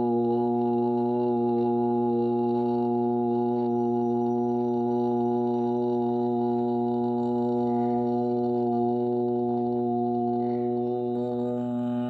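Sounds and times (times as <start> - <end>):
low devotional music drone: 0.0 - 12.0.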